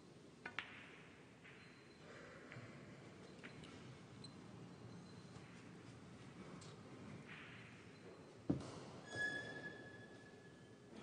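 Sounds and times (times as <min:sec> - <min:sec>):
faint click of pool balls: 0:00.4 - 0:04.3.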